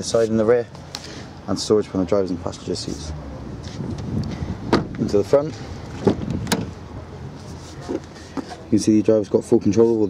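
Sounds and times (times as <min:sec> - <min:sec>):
car door handling noise: 0:04.7 - 0:05.0, 0:05.9 - 0:06.8
car door latch clunk: 0:04.7 - 0:05.0, 0:06.0 - 0:06.8.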